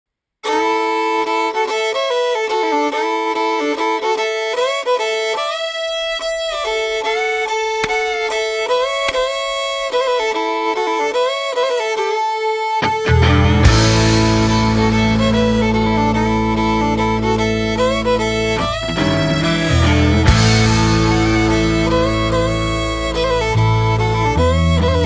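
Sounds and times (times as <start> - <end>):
fiddle playing slow melody: 0.4 - 25.0.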